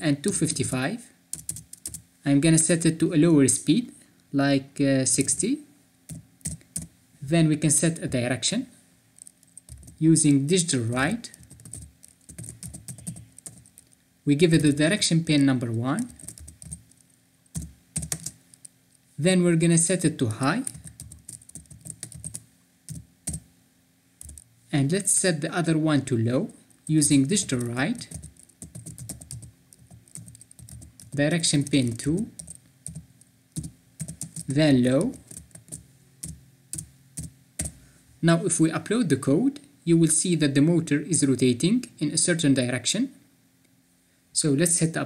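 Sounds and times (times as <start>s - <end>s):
typing on computer keyboard: 1.3s - 2.0s, 6.1s - 6.9s, 9.2s - 10.0s, 11.2s - 14.0s, 16.0s - 18.7s, 20.6s - 23.4s, 24.2s - 24.5s, 27.2s - 37.8s.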